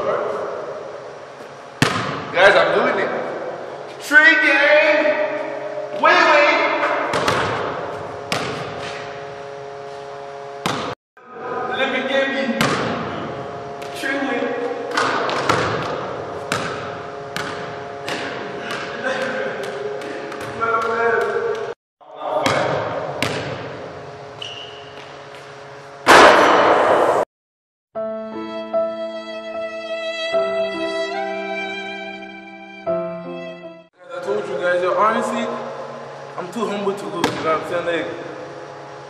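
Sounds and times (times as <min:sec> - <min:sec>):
basketball bouncing on wooden floor: 0:01.8 - 0:02.2, 0:07.1 - 0:07.7, 0:08.3 - 0:08.8, 0:10.6 - 0:10.9, 0:14.9 - 0:19.0, 0:22.5 - 0:23.7
ball striking rim and backboard: 0:01.8 - 0:02.4, 0:06.8 - 0:09.0, 0:10.6 - 0:11.0, 0:12.6 - 0:14.0, 0:14.9 - 0:19.0, 0:22.4 - 0:24.6, 0:26.0 - 0:27.2, 0:37.2 - 0:37.6.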